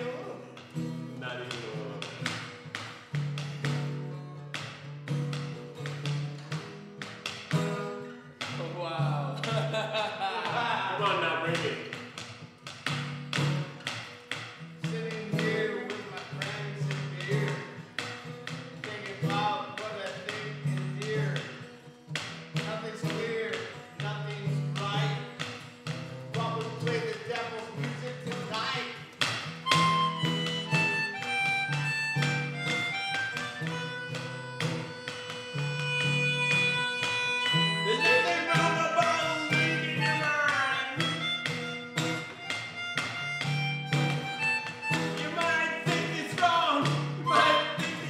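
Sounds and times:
acoustic guitar strumming: 0.0s - 48.0s
melodica melody: 29.6s - 46.2s, 47.2s - 48.0s.

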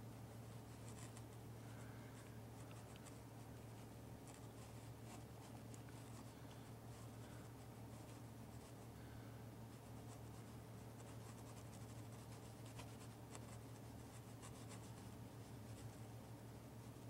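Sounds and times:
low hum and hiss: 0.0s - 17.0s.

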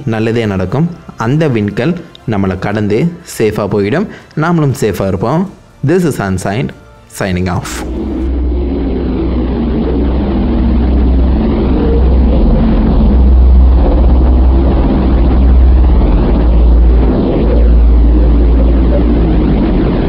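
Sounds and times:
deep rumble drone: 0.0s - 5.9s, 6.8s - 20.0s
hissing wash sweeping: 7.6s - 20.0s.

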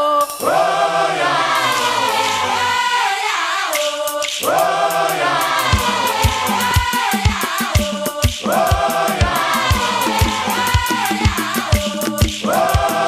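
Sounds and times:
chorus of women singing: 0.0s - 13.0s
low drum beats: 5.6s - 13.0s.

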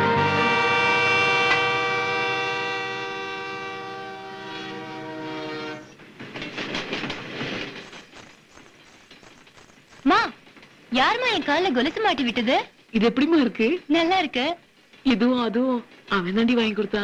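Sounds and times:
train horn: 0.0s - 6.0s
train wheels clattering on rails: 5.9s - 15.2s.

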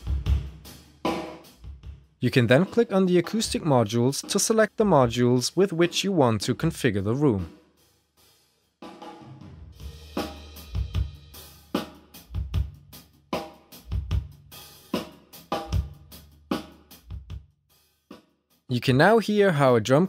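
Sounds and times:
hi-hat and cymbal wash: 0.0s - 1.8s, 9.8s - 18.2s.

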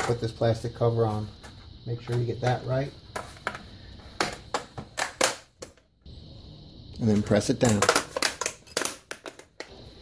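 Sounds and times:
plastic clicks and rattles: 7.6s - 9.7s.

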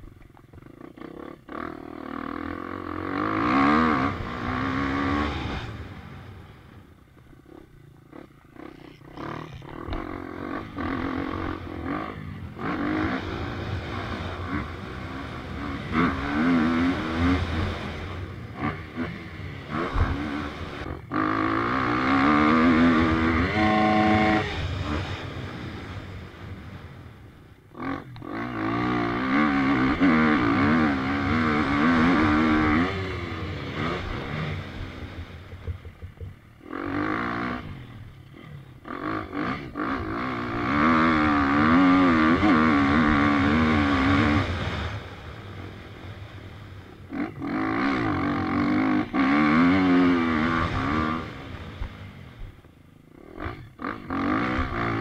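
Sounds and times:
dirt bike engine revving: 0.5s - 55.0s.

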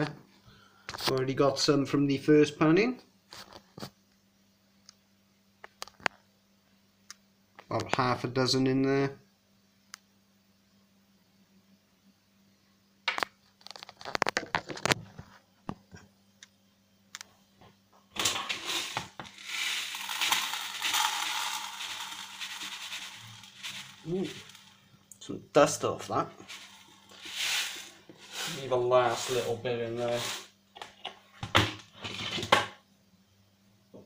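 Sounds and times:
pebbles and grit pouring into pan: 18.2s - 24.8s, 26.4s - 29.4s.

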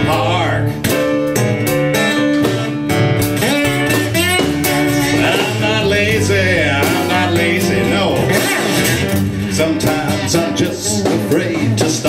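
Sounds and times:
electric guitar: 0.0s - 12.0s
live blues band: 0.0s - 12.0s.

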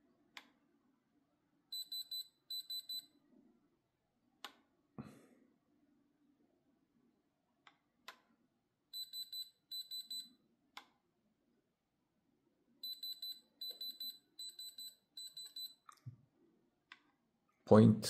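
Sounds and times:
electronic tester beeping: 1.7s - 3.1s, 9.0s - 10.3s, 12.8s - 15.8s.

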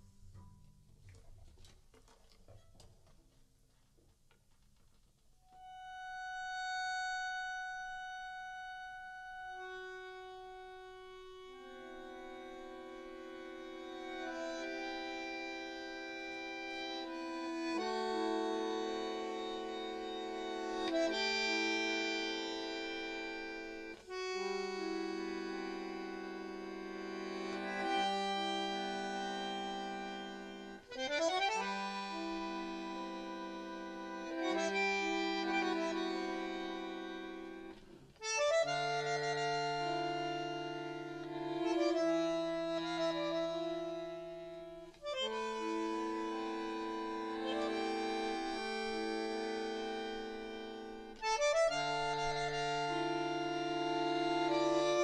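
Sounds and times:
bandoneon playing sustained chords: 5.6s - 55.0s.

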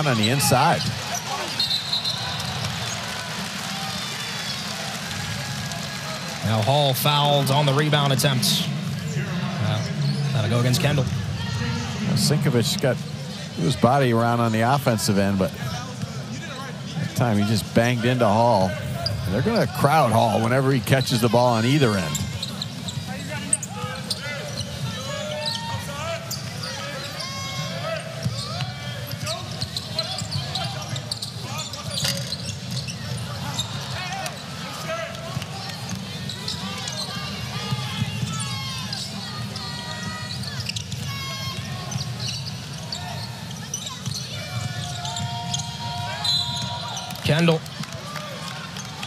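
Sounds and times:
crowd noise: 0.0s - 49.0s
whistle-like tone: 1.6s - 2.4s, 46.2s - 46.8s
basketball bouncing on court: 35.1s - 47.0s.

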